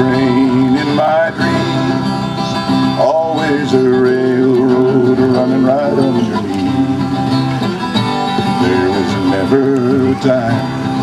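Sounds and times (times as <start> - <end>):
man singing: 0.0 - 7.4, 8.3 - 11.0
acoustic guitar strumming: 0.0 - 11.0.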